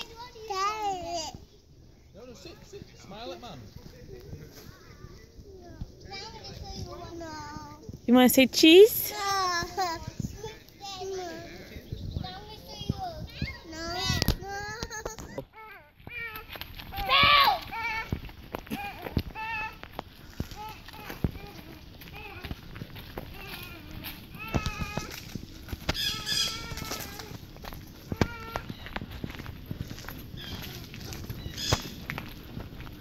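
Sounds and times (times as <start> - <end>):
footsteps on paved path: 2.5 - 33.0
child's high-pitched wordless calls: 17.0 - 18.1, 26.1 - 27.4
child's sing-song call: 20.4 - 25.4, 26.0 - 27.4.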